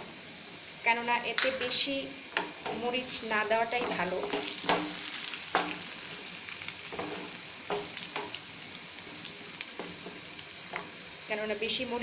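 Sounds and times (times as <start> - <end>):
potatoes sizzling in oil: 0.0 - 12.0.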